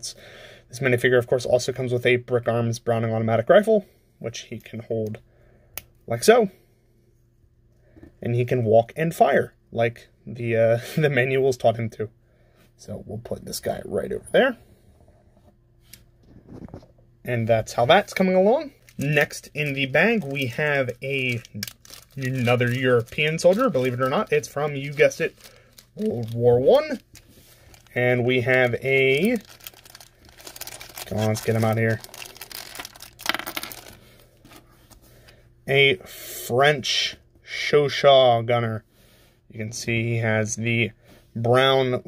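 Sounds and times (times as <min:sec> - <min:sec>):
faint steady hum: 0:00.0 - 0:42.0
plastic bag crinkling: 0:17.9 - 0:34.7.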